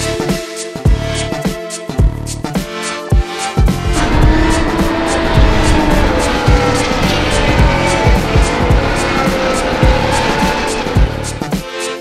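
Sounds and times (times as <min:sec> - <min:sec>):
background music with steady beat: 0:00.0 - 0:12.0
race car engines whining past: 0:03.8 - 0:11.5.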